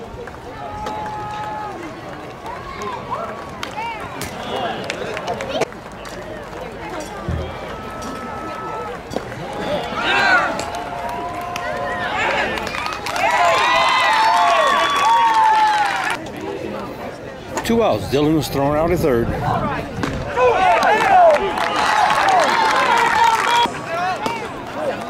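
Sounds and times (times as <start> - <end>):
spectators shouting: 0.4 - 5.1, 7.2 - 16.2, 20.2 - 25.0
long drawn-out yells: 9.6 - 16.2.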